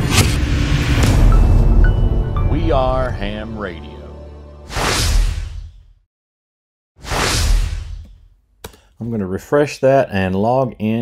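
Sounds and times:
whooshes: 0:04.7 - 0:05.9, 0:07.0 - 0:08.3.

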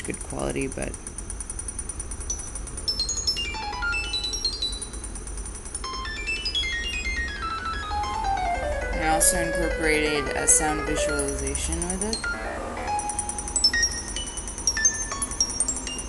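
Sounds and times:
steady low hum: 0:00.0 - 0:16.0
electronic beep tones: 0:05.8 - 0:16.0.

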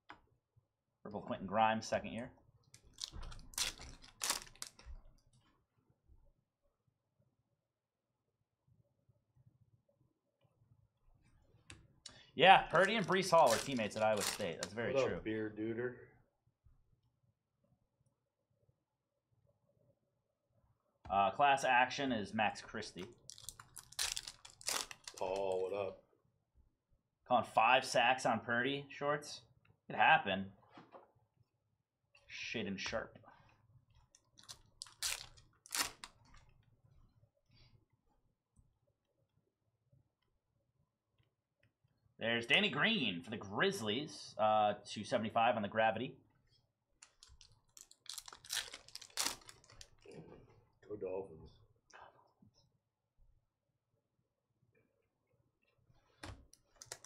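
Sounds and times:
foil wrapper crinkling and tearing: 0:02.8 - 0:04.8, 0:12.7 - 0:14.8, 0:23.2 - 0:25.5, 0:34.4 - 0:36.2, 0:47.0 - 0:50.1
trading cards flipped by hand: 0:02.8 - 0:04.9, 0:12.8 - 0:14.8, 0:34.4 - 0:36.2, 0:56.2 - 0:57.0.

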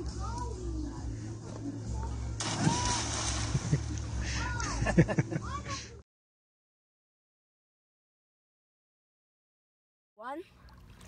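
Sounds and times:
rush of water: 0:02.4 - 0:04.6
child splashing into water: 0:02.4 - 0:04.8.

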